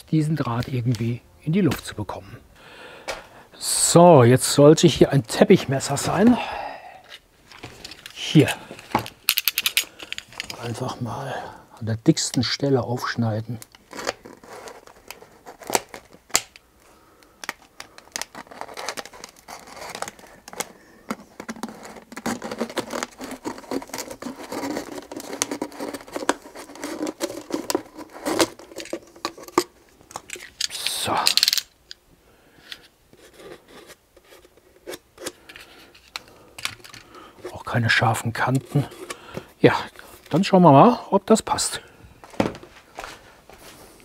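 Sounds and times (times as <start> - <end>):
handling noises: 7.0 - 10.9, 13.6 - 32.0, 32.6 - 40.6, 42.2 - 44.0
plastic crunch: 13.5 - 16.6, 17.3 - 31.8
knife cutting plastic bottle: 17.8 - 29.7.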